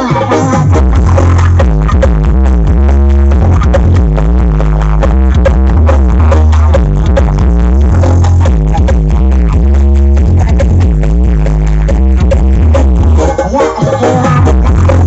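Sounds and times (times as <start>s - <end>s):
loud electronic dance music: 0.0s - 15.0s.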